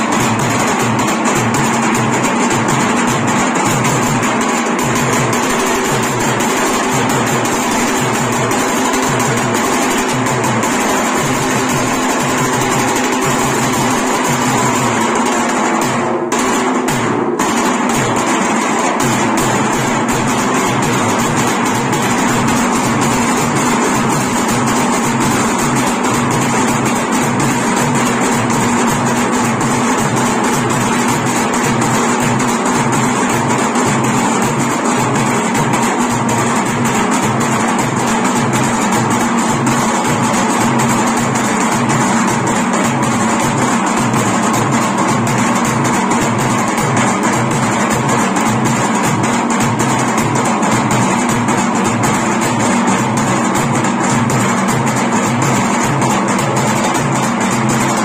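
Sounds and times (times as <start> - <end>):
barrel drums beaten with sticks: 0.0 - 58.0.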